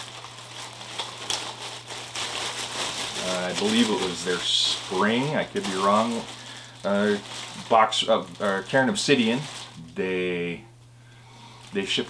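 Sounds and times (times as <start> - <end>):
plastic bag crinkling: 0.0 - 10.5, 11.3 - 12.0.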